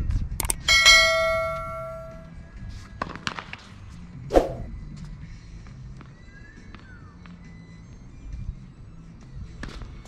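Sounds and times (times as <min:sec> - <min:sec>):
notification bell ding: 0:00.7 - 0:02.3.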